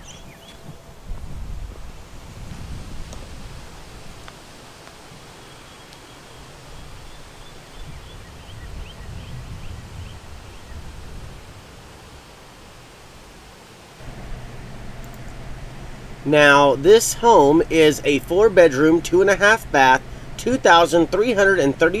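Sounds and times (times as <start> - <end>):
wind buffeting microphone: 0.0 - 4.7, 6.4 - 12.2.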